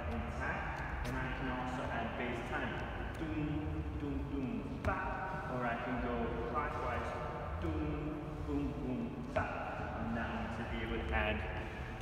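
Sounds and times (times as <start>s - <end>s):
man speaking: 0.0s - 11.8s.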